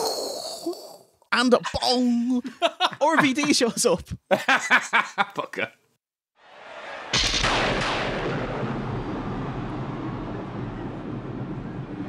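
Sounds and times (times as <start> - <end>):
thunderclap crack and rolling decay: 6.5 - 12.0.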